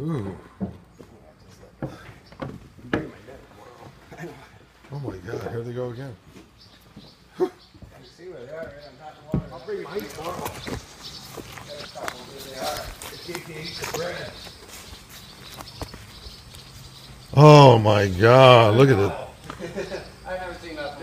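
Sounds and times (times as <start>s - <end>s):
people talking indistinctly: 7.2s - 15.6s, 16.6s - 21.0s.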